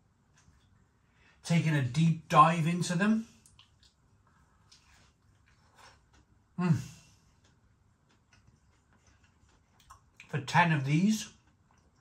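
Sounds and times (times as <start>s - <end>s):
person chewing crunchy food: 3.4s - 6.6s, 7.2s - 10.3s.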